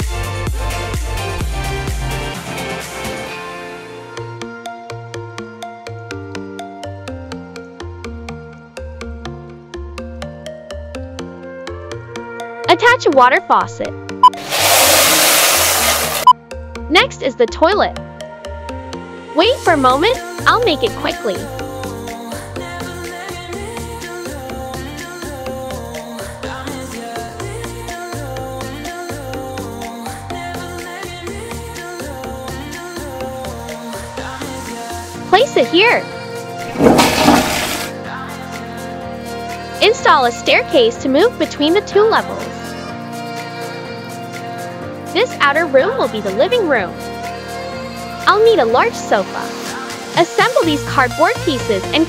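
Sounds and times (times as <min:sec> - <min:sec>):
light background music: 0:00.0 - 0:52.0
faucet water running: 0:14.2 - 0:16.3, 0:36.7 - 0:37.9
toilet flush: 0:14.2 - 0:16.3, 0:36.7 - 0:38.0.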